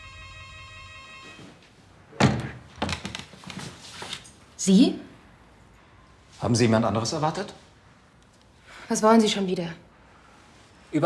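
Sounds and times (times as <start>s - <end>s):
electric doorbell buzzing: 0.0s - 1.6s.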